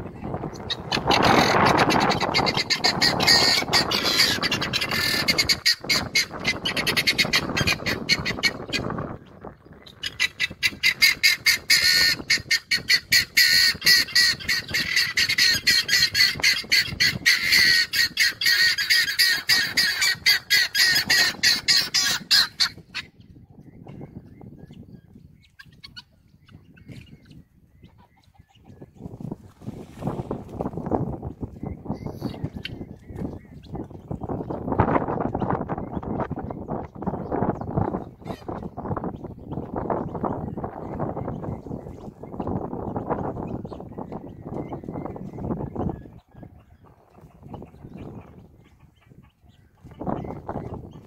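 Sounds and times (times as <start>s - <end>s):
guineafowl calling: 0.2s - 29.1s, 31.2s - 51.0s.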